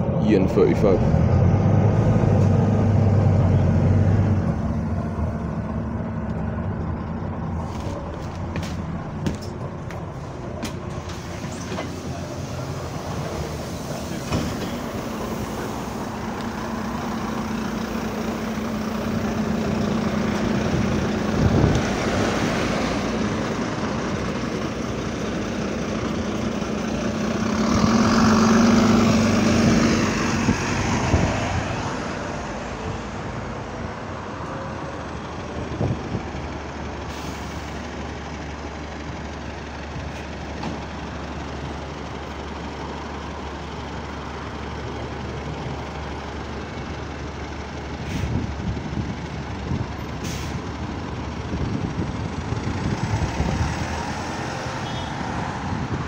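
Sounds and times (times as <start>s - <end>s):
bus engine idling hum: 0.0s - 56.0s
lorries cars and buses passing: 0.0s - 56.0s.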